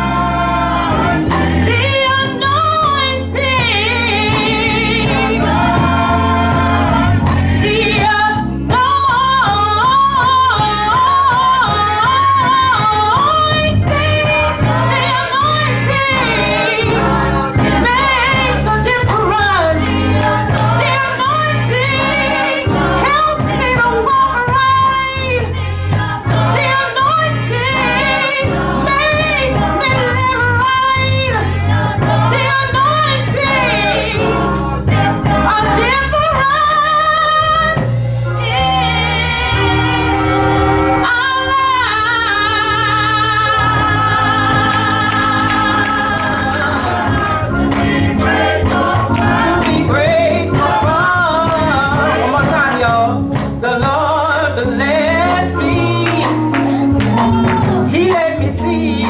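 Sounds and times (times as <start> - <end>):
choir singing: 0.0 - 8.5, 10.6 - 59.0
live band with drums and bass: 0.0 - 59.0
woman singing into a microphone: 1.6 - 6.1, 7.6 - 20.0, 20.7 - 31.6, 32.3 - 34.5, 35.4 - 37.9, 41.0 - 47.2, 49.1 - 59.0.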